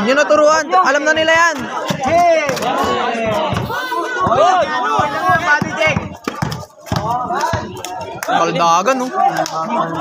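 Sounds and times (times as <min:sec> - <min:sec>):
spectators shouting: 0:00.0 - 0:10.0
basketball bouncing on concrete: 0:01.2 - 0:08.1.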